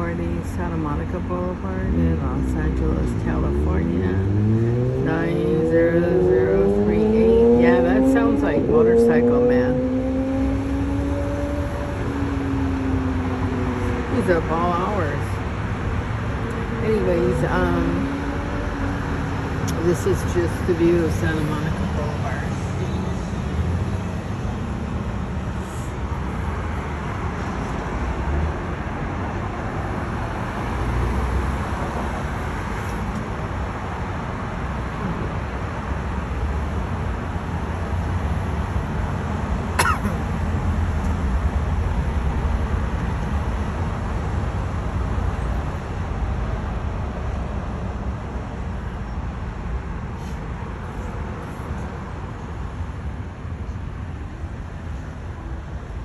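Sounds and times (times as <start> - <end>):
passing cars rumbling: 0.0 - 56.0.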